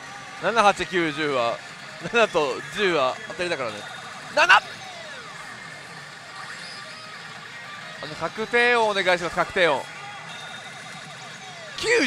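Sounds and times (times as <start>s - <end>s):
pachinko machine music and effects: 0.0s - 12.0s.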